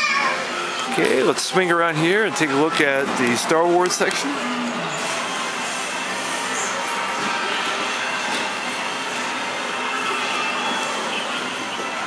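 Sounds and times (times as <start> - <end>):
busy indoor shopping floor: 0.0 - 12.0.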